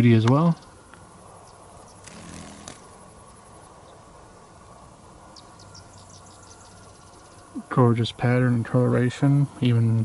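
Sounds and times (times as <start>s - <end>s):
insects chirping: 0.0s - 8.0s.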